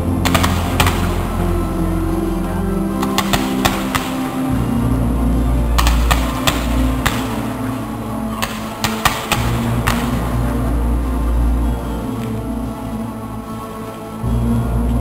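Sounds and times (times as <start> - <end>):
loud music with deep bass: 0.0 - 15.0.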